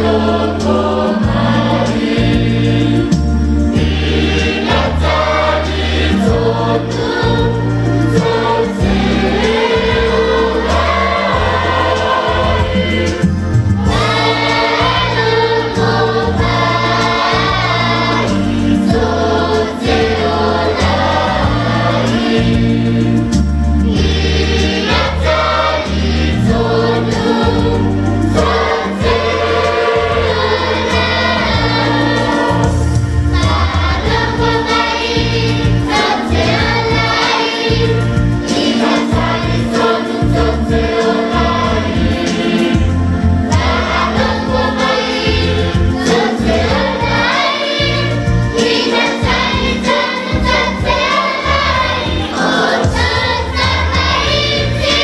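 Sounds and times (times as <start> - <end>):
low bass notes: 0.0 - 48.6, 50.4 - 55.0
choir singing a hymn: 0.0 - 55.0.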